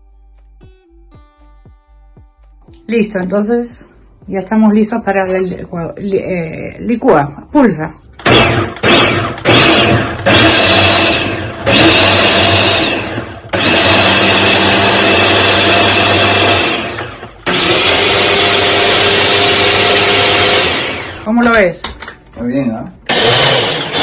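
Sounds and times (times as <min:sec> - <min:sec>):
blender pulsing: 0:08.2 - 0:21.3, 0:23.1 - 0:24.0.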